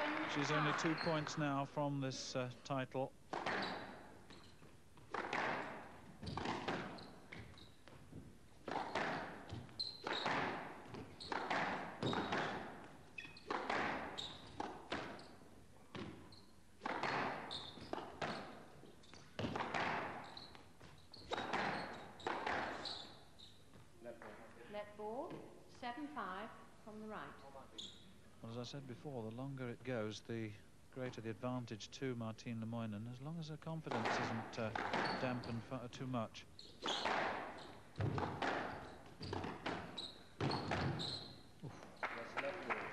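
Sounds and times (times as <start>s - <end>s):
squash ball hits echoing: 5.1s - 7.0s, 8.6s - 12.9s, 13.5s - 15.2s, 16.8s - 18.6s, 19.4s - 20.2s, 21.3s - 22.8s, 33.9s - 35.1s, 36.8s - 41.1s.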